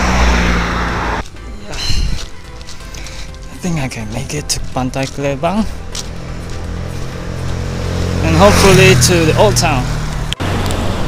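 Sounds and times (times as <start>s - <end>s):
car approaching on road: 0.0s - 1.5s, 4.2s - 11.0s
background music: 0.0s - 11.0s.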